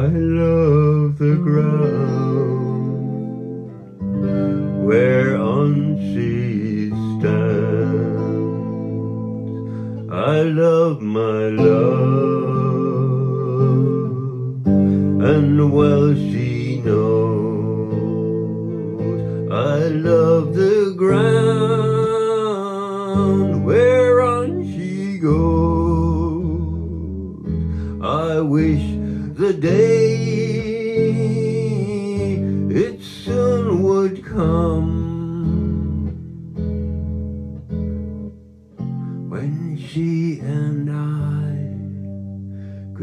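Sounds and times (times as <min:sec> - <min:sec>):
slow electric guitar ballad: 0:00.0 - 0:43.0.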